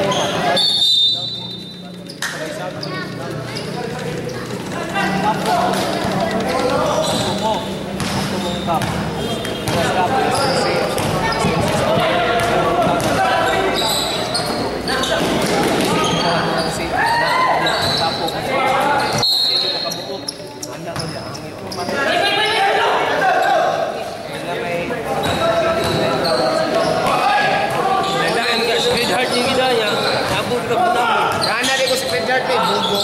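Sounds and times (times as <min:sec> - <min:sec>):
people calling and shouting: 0:00.0 - 0:33.0
basketball dribbling on hard court: 0:08.0 - 0:13.1.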